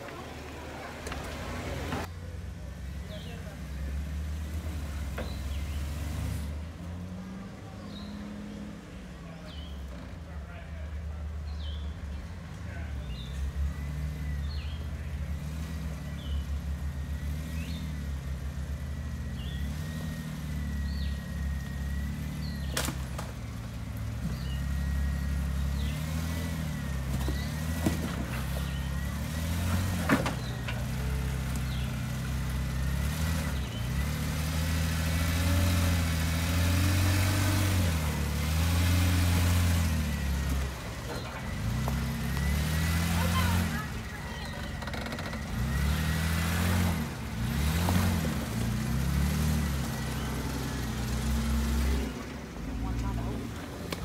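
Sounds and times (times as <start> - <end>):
off-road engine revving at low revs: 0.0 - 54.0.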